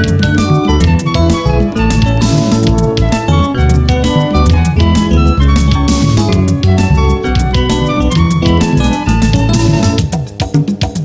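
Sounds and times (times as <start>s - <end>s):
electric guitar lines: 0.0s - 10.8s
bass: 0.0s - 11.0s
drums: 0.0s - 11.0s.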